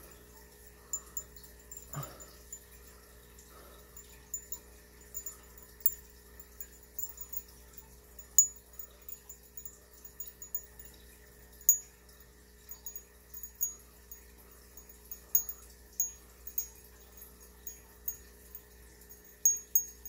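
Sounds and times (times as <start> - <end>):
faint steady hum: 0.0 - 20.0
high-pitched tinkling pings: 0.0 - 20.0.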